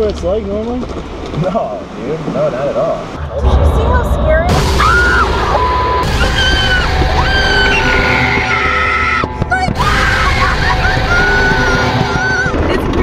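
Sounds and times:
low rumble: 0.0 - 13.0
woman screaming: 4.6 - 12.6.

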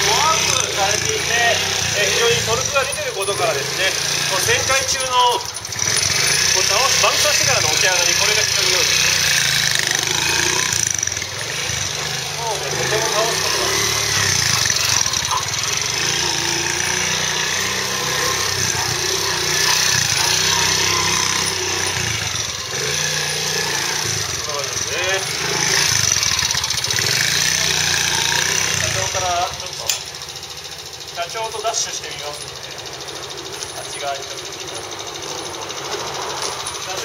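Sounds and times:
small motorcycle engine revving: 0.0 - 37.0.

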